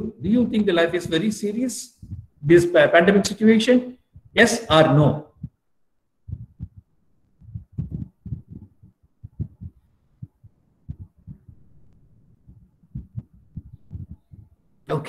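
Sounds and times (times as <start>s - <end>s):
soft low thumps: 0.0s - 2.6s, 4.1s - 5.6s, 6.2s - 14.8s.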